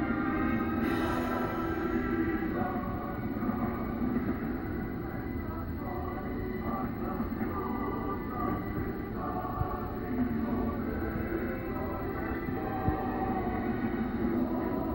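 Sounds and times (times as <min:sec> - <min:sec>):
indistinct voices: 0:00.0 - 0:14.9
slow sustained film music: 0:00.0 - 0:14.9.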